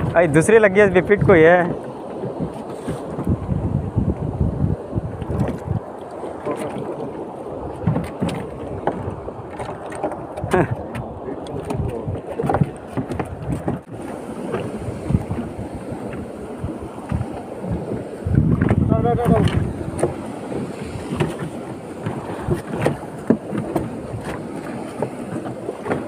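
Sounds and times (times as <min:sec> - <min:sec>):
water slapping against boat hull: 0:00.0 - 0:26.0
wind on microphone: 0:00.0 - 0:26.0.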